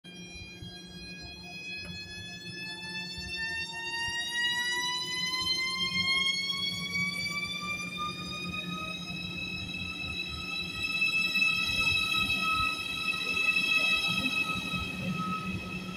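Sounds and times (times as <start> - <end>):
electric train motor whine: 0.1 - 15.9.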